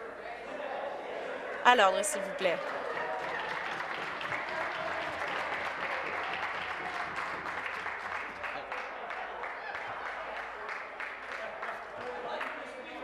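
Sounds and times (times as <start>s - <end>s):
crowd applauding: 1.5s - 13.0s.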